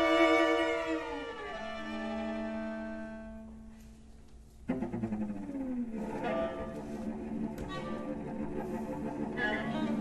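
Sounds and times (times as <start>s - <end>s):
string quartet playing: 0.0s - 10.0s.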